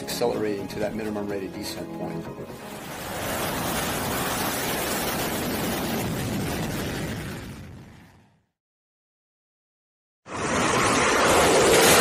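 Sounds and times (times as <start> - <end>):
jet engines roaring: 2.6 - 8.1, 10.3 - 12.0.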